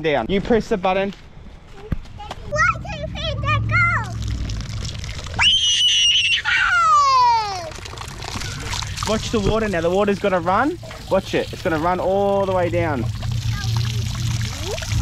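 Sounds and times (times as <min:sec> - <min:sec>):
water splashing onto drain plate: 0:04.0 - 0:15.0
small child squealing: 0:05.4 - 0:08.9.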